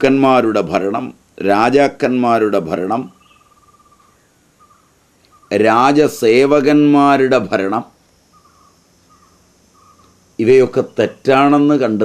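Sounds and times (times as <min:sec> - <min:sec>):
bird calling faintly: 0:00.0 - 0:12.0.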